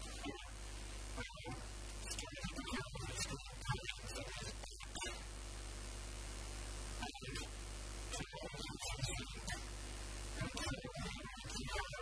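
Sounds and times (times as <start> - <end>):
steady hiss: 0.0 - 12.0
man speaking distorted: 8.2 - 9.7.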